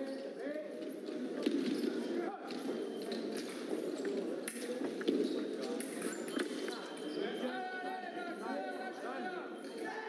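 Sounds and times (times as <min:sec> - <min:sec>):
voices in a hall: 0:00.0 - 0:10.0.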